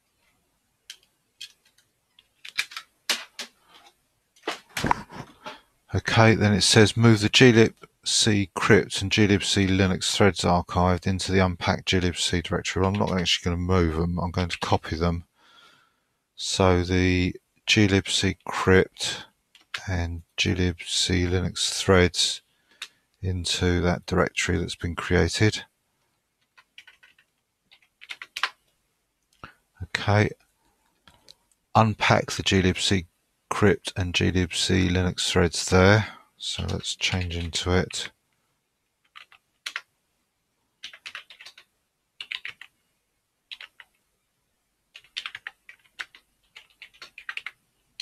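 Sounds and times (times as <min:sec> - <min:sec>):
faint keyboard keystrokes: 0:00.8 - 0:05.3, 0:26.4 - 0:29.4, 0:40.8 - 0:42.7, 0:43.5 - 0:44.0.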